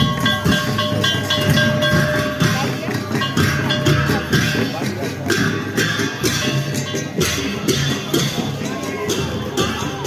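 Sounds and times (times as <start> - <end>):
crowd: 0.0 - 10.0
low drum beats: 0.0 - 10.0
ringing metal percussion: 0.0 - 10.0.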